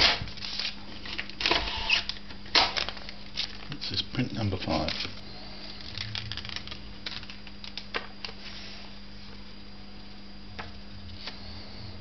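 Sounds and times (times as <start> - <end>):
instant print peeling crackles: 0.4 - 8.6.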